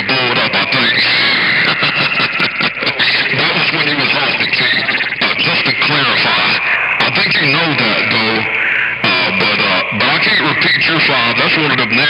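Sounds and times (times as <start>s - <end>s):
distorted radio rasp: 0.0s - 12.0s
garbled radio voices: 0.0s - 12.0s.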